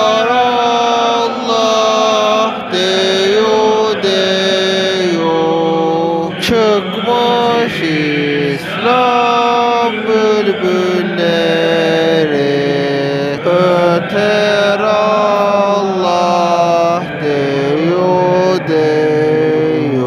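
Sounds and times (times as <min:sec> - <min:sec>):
person chanting long gliding notes: 0:00.0 - 0:20.0.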